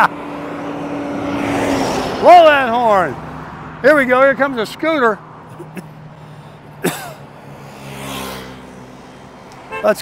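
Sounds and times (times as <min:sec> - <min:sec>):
dump truck engine and tyres: 0:00.0 - 0:10.0.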